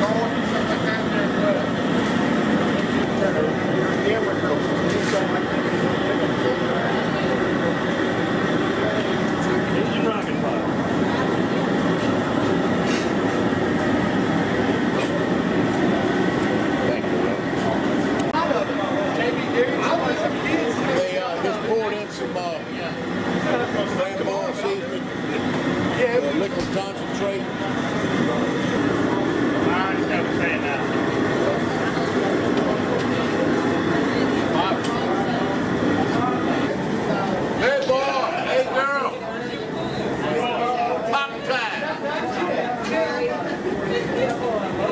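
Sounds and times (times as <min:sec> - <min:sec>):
people talking indistinctly: 0:00.0 - 0:44.9
propane burner roaring: 0:00.0 - 0:44.9.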